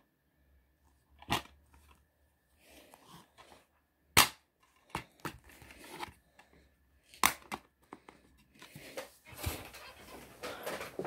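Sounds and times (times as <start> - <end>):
plastic case snapping open: 7.1 - 7.7.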